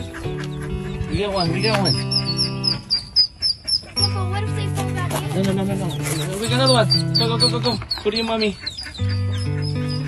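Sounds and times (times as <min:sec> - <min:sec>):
background music: 0:00.0 - 0:10.0
ducklings peeping: 0:00.0 - 0:10.0.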